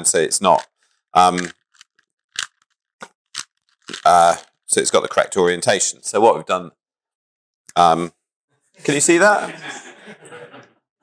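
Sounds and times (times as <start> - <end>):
puzzle cube plastic clicks: 0.6 - 5.2.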